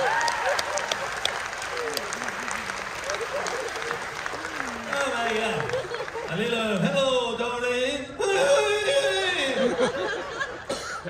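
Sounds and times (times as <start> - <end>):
audience applause: 0.0 - 7.0.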